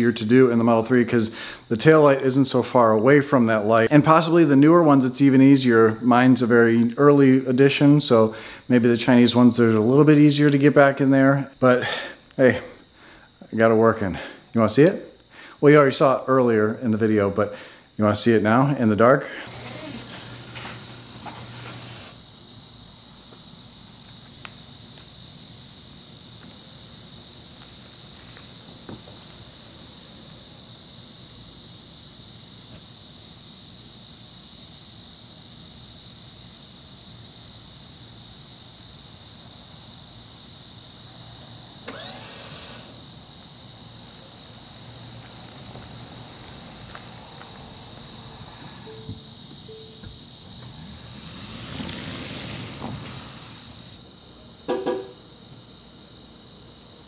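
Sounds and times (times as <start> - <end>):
night insects chirring: 0.0 - 57.0.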